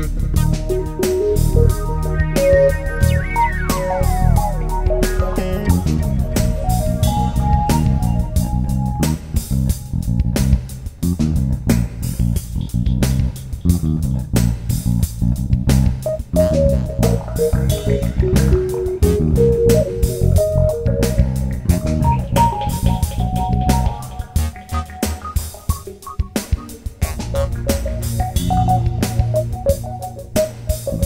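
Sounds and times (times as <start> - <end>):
bass guitar line: 0.0 - 31.0
higher melody line: 0.2 - 10.1, 16.1 - 31.0
drum hits: 0.3 - 11.0, 15.8 - 31.0.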